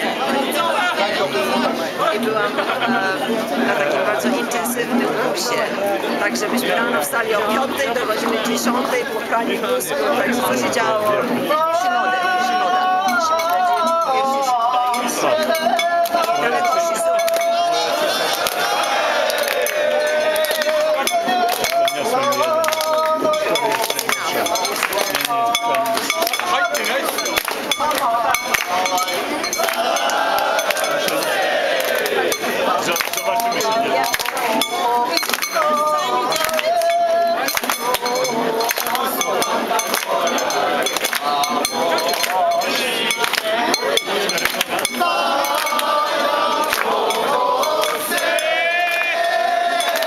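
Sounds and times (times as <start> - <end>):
men calling in wavering tones: 0.0 - 50.0
rapid metallic clinking: 20.0 - 31.4, 32.3 - 48.6.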